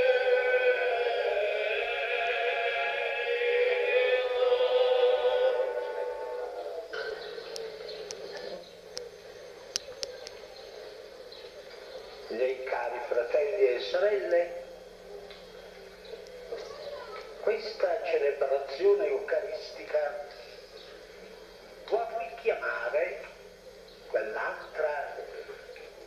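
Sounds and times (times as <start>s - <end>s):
person chanting a long note: 0.0s - 7.6s
low steady hum: 0.0s - 26.0s.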